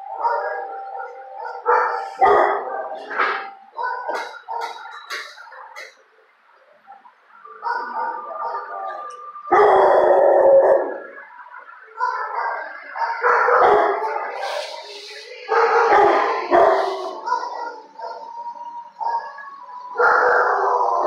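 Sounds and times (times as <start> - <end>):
dog howling: 0.0 - 3.1, 7.4 - 14.8, 15.4 - 21.0
dog barking: 0.0 - 6.0, 7.0 - 10.0, 12.0 - 14.8, 15.5 - 18.4.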